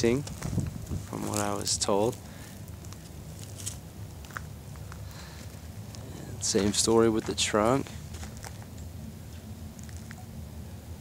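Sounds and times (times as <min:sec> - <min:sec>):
footsteps on gravel: 0:00.0 - 0:08.8
low outdoor rumble: 0:00.0 - 0:11.0.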